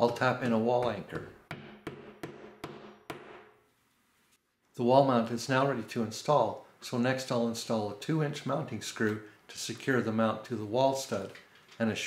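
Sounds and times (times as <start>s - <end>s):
hammer tapping wall anchor: 0.0s - 3.5s.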